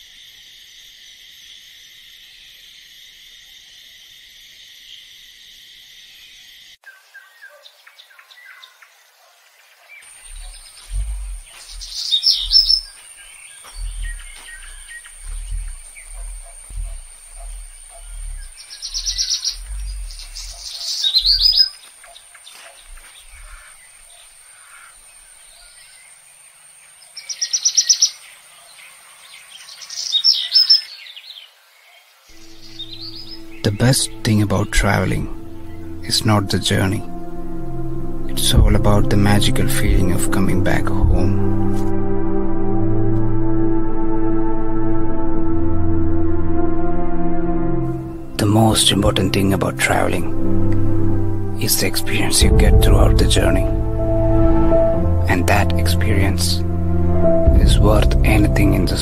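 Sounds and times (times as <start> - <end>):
crickets chirping: 0.0 - 7.4, 8.0 - 59.0
birds calling: 6.2 - 41.9
high insect tone: 10.0 - 30.9, 32.3 - 46.2
low thumps: 10.2 - 12.9, 13.6 - 21.6, 52.3 - 59.0.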